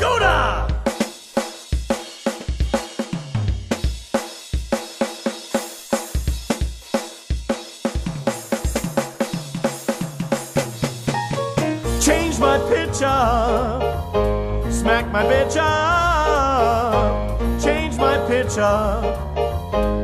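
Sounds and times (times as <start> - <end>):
drum kit solo: 0.0 - 20.0.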